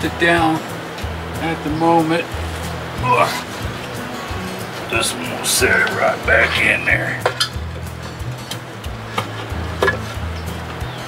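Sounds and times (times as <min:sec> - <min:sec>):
background music: 0:00.0 - 0:11.0
metal knocks and clunks: 0:09.1 - 0:10.2.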